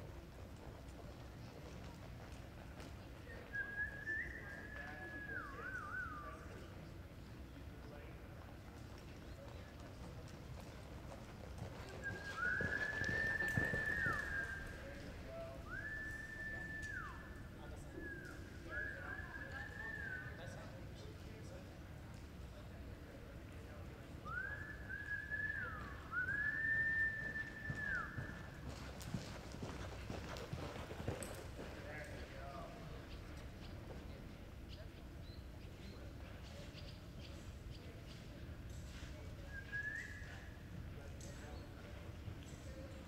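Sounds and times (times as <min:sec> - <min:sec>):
high human whistle: 0:03.6 - 0:06.4, 0:12.0 - 0:15.0, 0:15.7 - 0:20.4, 0:24.2 - 0:28.4, 0:39.5 - 0:40.5
horse hoofbeats on dirt: 0:08.4 - 0:15.5, 0:27.0 - 0:34.2
person whistling: 0:24.3 - 0:28.1.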